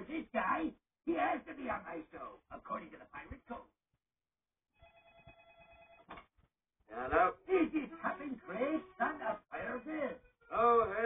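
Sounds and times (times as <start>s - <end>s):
telephone ringing through speaker: 4.8s - 6.1s.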